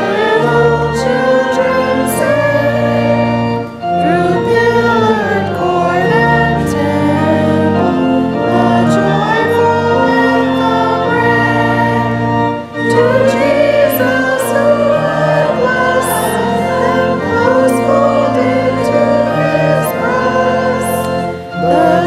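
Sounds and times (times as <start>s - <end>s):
church choir singing: 0.0s - 22.0s
sustained low accompaniment: 0.0s - 22.0s.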